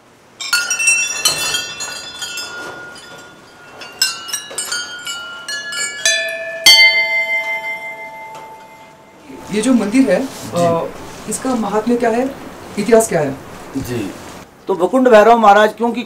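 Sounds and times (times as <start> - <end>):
temple bells ringing: 0.4 - 13.7.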